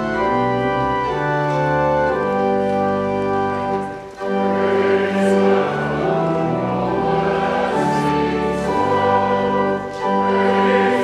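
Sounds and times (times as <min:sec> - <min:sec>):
organ: 0:00.0 - 0:11.0
choir singing a hymn: 0:03.8 - 0:11.0.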